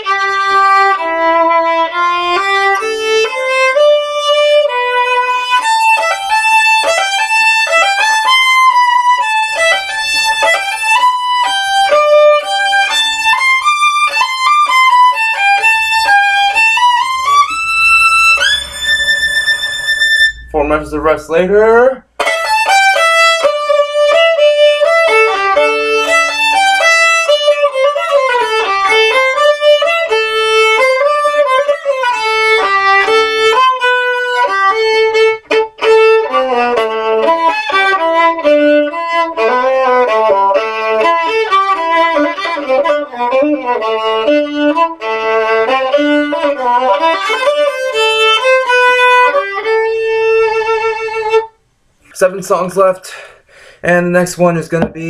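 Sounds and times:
violin fast melody: 0:00.0 - 0:51.6.

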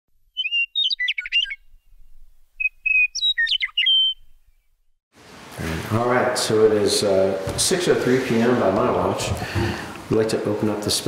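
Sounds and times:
bird singing whistled phrases: 0:00.3 - 0:04.7
man speaking: 0:05.6 - 0:11.0.

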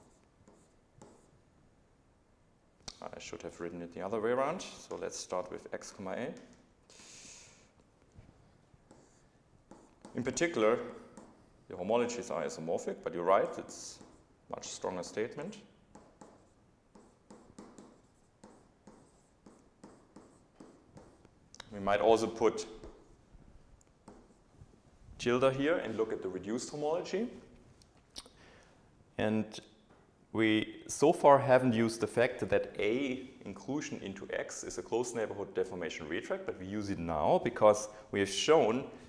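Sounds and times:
stylus tapping and scratching on tablet: 0:00.0 - 0:01.4, 0:07.8 - 0:11.5, 0:13.4 - 0:14.3, 0:15.9 - 0:21.4, 0:22.7 - 0:23.2, 0:23.8 - 0:24.8.

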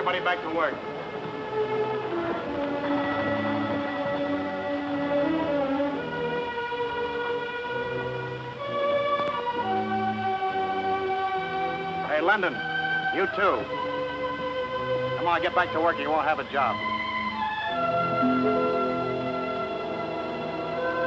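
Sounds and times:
held orchestral string chords: 0:00.0 - 0:21.0.

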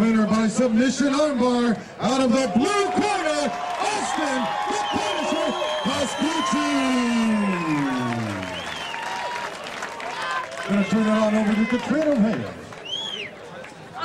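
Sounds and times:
crowd cheering: 0:02.0 - 0:14.0
applause: 0:02.5 - 0:13.8.

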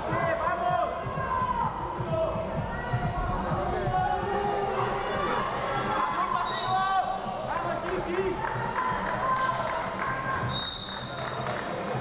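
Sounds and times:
voices shouting in a large hall: 0:00.0 - 0:12.0
high whistle blasts: 0:10.5 - 0:11.5.

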